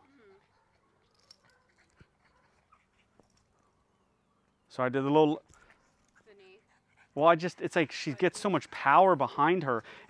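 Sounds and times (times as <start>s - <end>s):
small dog whimpering: 0.0s - 3.1s.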